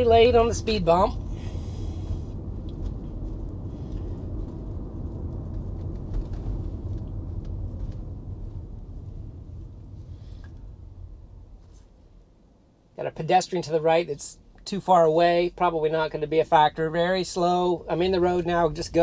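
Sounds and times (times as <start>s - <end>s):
road and tyre rumble in car: 0.0s - 19.0s.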